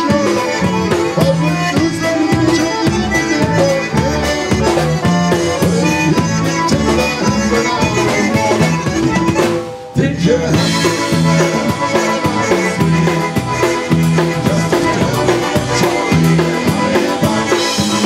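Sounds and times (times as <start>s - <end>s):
polka band playing: 0.0s - 18.0s.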